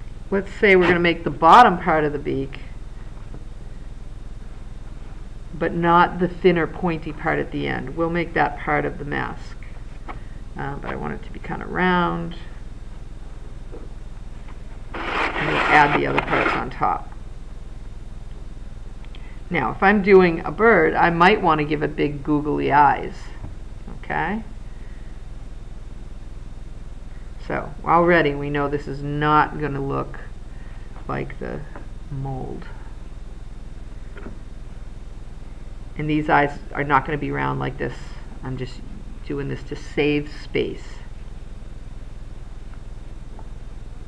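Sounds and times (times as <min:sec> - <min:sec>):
low electrical hum: 0:00.0 - 0:44.0.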